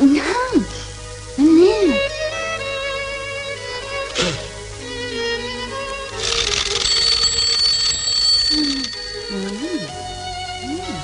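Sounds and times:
rushing shimmer: 0:04.5 - 0:11.0
high bell-like ringing tone: 0:06.8 - 0:10.6.

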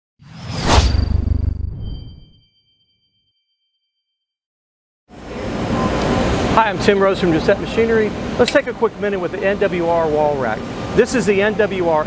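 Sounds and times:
whoosh: 0:00.2 - 0:02.4
thin high ringing tone: 0:01.8 - 0:03.7.

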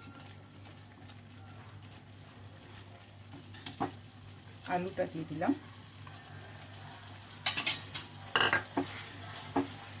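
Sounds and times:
paste sizzling in a pan: 0:00.0 - 0:10.0
spatula stirring: 0:07.4 - 0:10.0.

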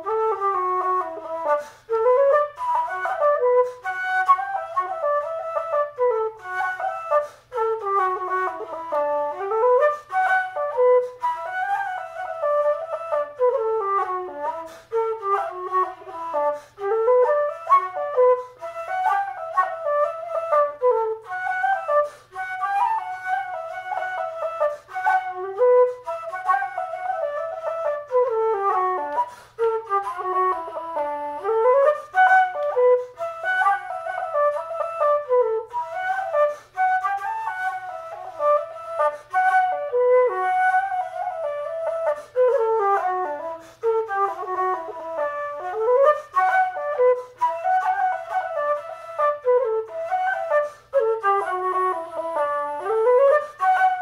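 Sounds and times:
solo flute playing quick notes: 0:00.0 - 0:54.0.

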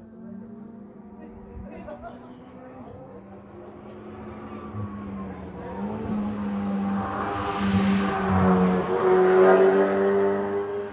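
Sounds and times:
rally car engine shifting gears: 0:03.3 - 0:10.9.

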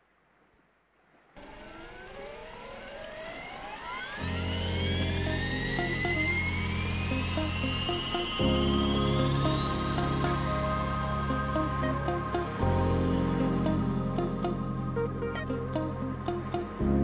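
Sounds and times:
rising synth sweep: 0:01.4 - 0:17.0
sustained bass chords: 0:04.2 - 0:17.0.

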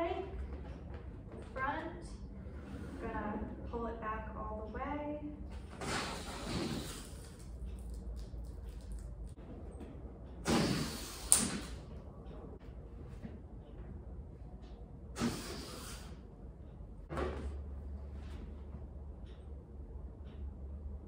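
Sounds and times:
air rushing out of balloon: 0:05.7 - 0:07.3, 0:10.4 - 0:11.8, 0:15.2 - 0:16.2.

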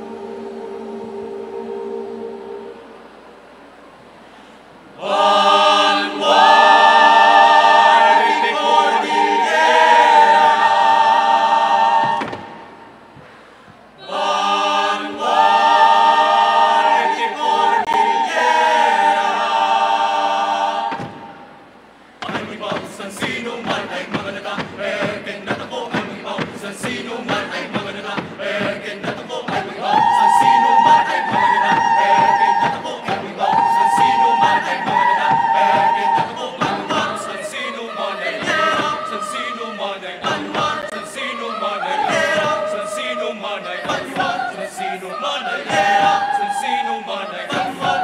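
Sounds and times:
mixed choir singing a cappella: 0:00.0 - 0:48.0.

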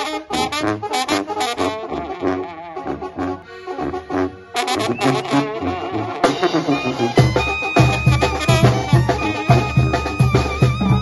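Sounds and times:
brass band playing: 0:00.0 - 0:11.0
tuba bass line: 0:00.0 - 0:11.0
drums: 0:04.9 - 0:11.0.

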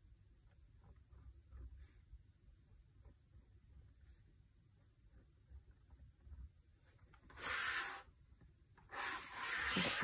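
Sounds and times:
planner rubbing on desk: 0:05.1 - 0:08.2, 0:08.8 - 0:10.0.

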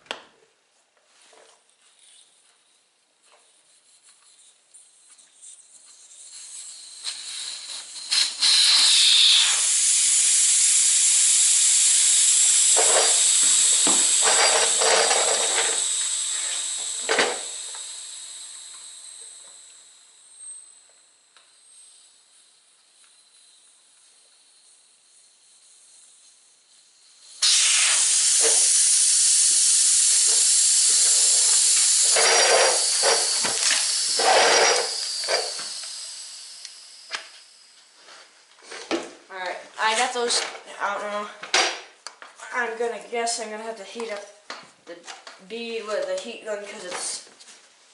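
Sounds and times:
air hissing out of tire valve: 0:05.7 - 0:20.9, 0:21.5 - 0:38.4.

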